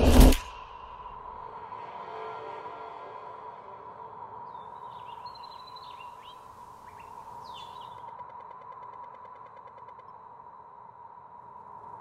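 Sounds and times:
birds chirping: 4.4 - 8.2.

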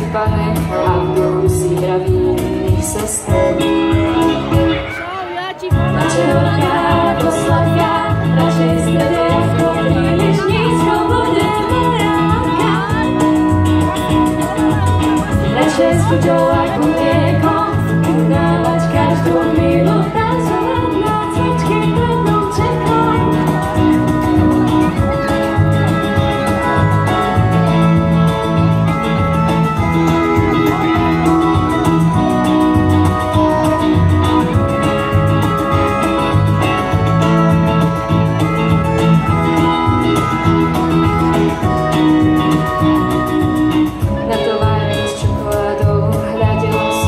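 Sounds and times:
person singing: 0.0 - 27.9, 39.2 - 47.0
bass guitar: 0.0 - 47.0
electric guitar: 0.0 - 47.0
keyboard: 0.0 - 47.0
percussion beat: 5.7 - 47.0.

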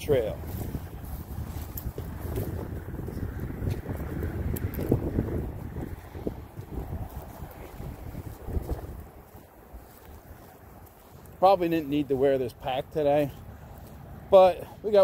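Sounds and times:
wind buffeting microphone: 0.0 - 11.4.

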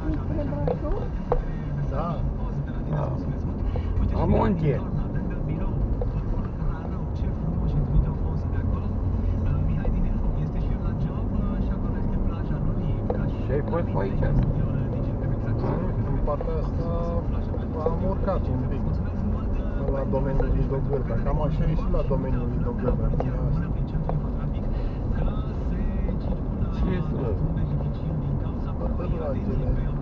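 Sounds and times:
car engine and tyre rumble: 0.0 - 30.0
people talking: 0.0 - 30.0.

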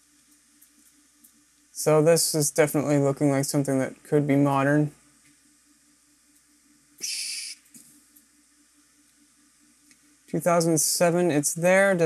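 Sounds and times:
short high hiss: 7.0 - 7.8.

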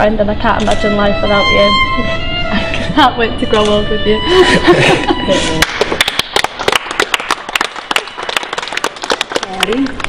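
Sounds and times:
audience applause: 5.6 - 10.0.

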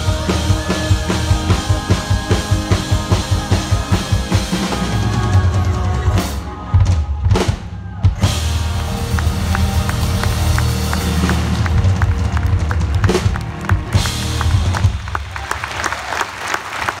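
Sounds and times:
live pop-rock band playing: 0.0 - 15.6.

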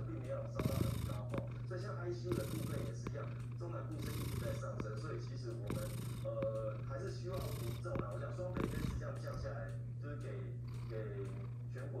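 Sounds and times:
cat purring: 0.0 - 12.0.

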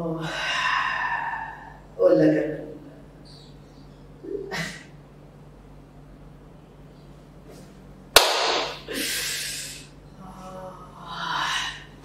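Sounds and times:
sharp hand clap: 8.2 - 8.8.

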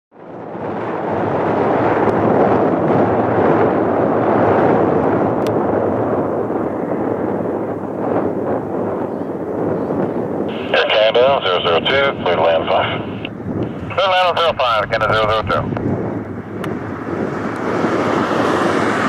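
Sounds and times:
jet engine rumble: 0.2 - 19.0.

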